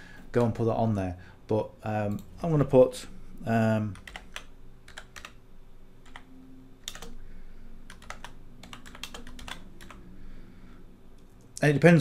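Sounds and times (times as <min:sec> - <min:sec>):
typing on computer keyboard: 0:04.0 - 0:05.4, 0:06.1 - 0:07.2, 0:07.9 - 0:10.0.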